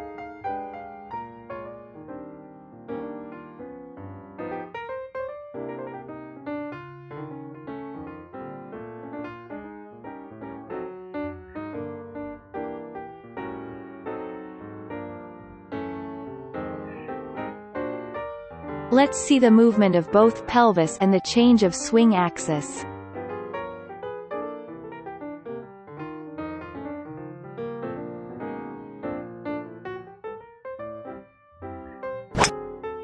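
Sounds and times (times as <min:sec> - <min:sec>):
piano notes and chords: 0:00.0 - 0:33.0.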